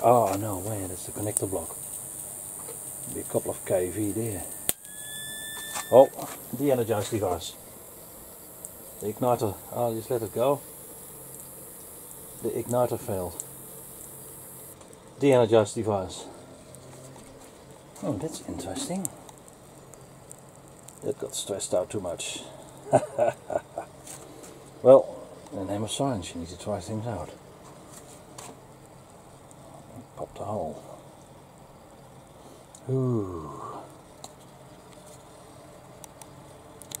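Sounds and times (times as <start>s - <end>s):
faint electrical hum: 0.0s - 37.0s
faint ticks: 8.4s - 9.2s, 11.2s - 15.0s.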